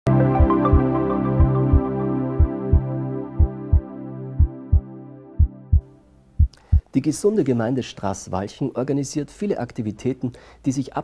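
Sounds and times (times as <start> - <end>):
sustained music chord: 0.1 - 5.8
heartbeat thumps: 0.4 - 1.8, 2.4 - 3.8, 4.4 - 4.8, 5.4 - 6.9.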